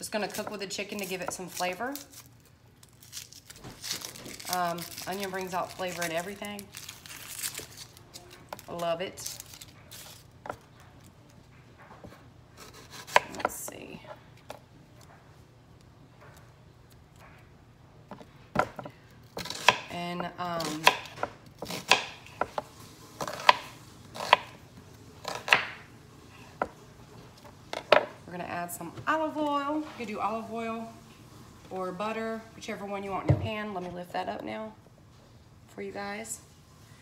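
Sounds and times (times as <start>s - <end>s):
woman speaking: 0.0s - 2.1s, 4.5s - 6.7s, 8.6s - 9.4s, 19.9s - 20.9s, 28.3s - 31.0s, 31.7s - 34.8s, 35.7s - 36.4s.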